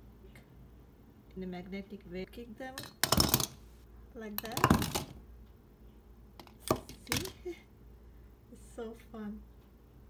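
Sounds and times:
plastic toy figures knocking: 4.4s - 5.2s.

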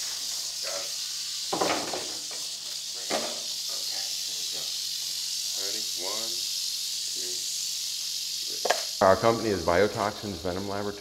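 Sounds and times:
rattlesnake rattling: 0.0s - 11.0s.

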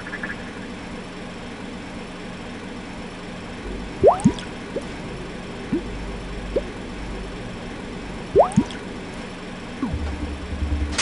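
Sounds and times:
water drops plinking: 4.0s - 4.5s, 8.4s - 8.8s.

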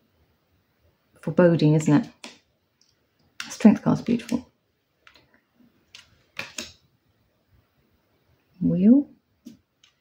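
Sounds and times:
card rustle and tap: 5.9s - 6.8s.

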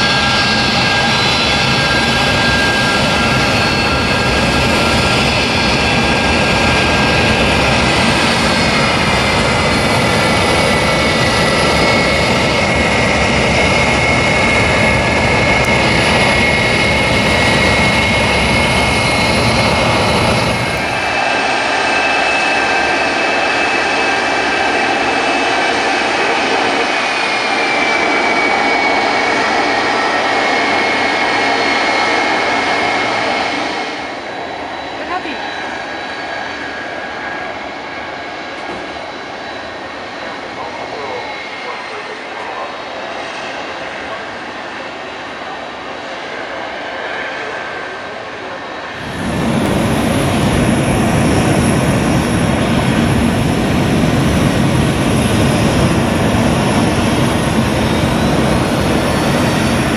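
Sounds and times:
deep engine rumble: 0.0s - 22.8s, 49.0s - 59.9s
jet engine high whine: 0.0s - 59.9s.

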